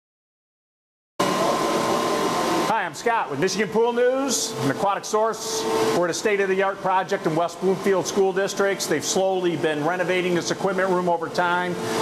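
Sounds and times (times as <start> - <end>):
machinery humming: 1.2 - 12.0.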